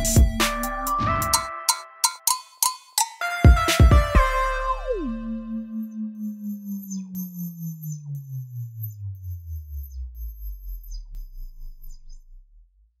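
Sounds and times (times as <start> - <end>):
low pulsing synthesizer tone: 4.2 - 13.0.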